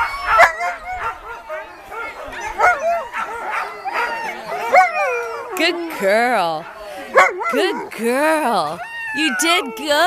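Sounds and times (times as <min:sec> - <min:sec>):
dogs howling calls: 0:00.0 - 0:06.1, 0:07.1 - 0:10.0.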